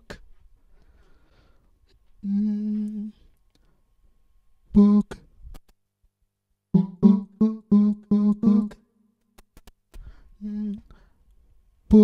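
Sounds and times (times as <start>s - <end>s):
man humming low note: 2.2s - 3.2s, 6.8s - 8.8s, 10.4s - 10.9s.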